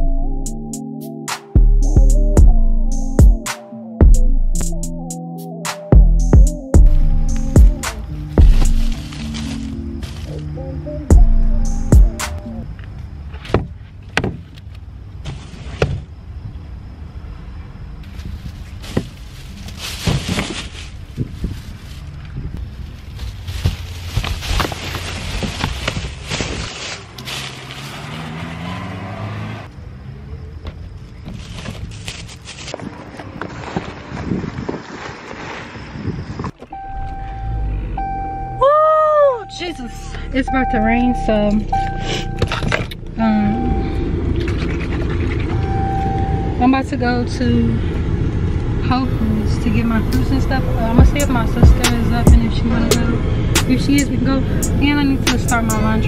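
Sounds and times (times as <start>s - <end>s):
plastic bags rustling: 8.2s - 10.4s, 18.3s - 28.2s.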